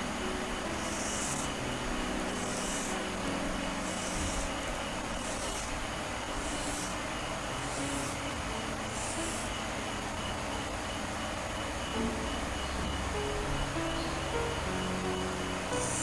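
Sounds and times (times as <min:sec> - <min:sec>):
steady background hiss: 0:00.0 - 0:16.0.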